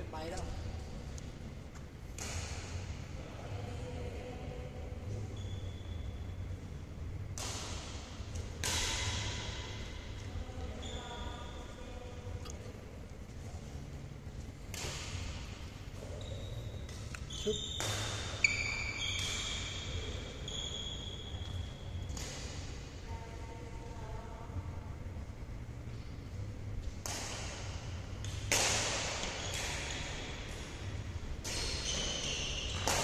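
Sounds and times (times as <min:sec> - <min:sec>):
racket striking shuttlecock: 0:02.1 - 0:02.9, 0:07.3 - 0:09.8, 0:14.7 - 0:15.7, 0:16.9 - 0:19.8, 0:26.8 - 0:30.8, 0:31.4 - 0:33.0
sneakers squeaking on court: 0:16.0 - 0:22.0, 0:31.4 - 0:33.0.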